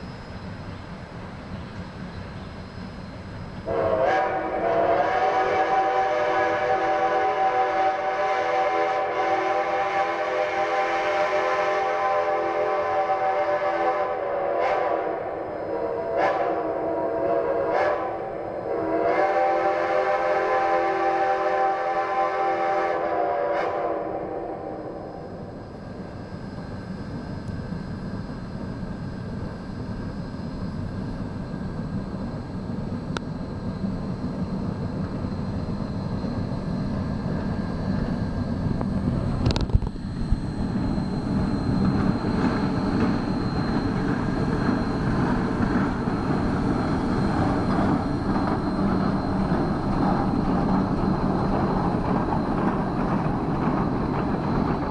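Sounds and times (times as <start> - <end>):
steam locomotive whistle blasts: 3.6 - 25.6.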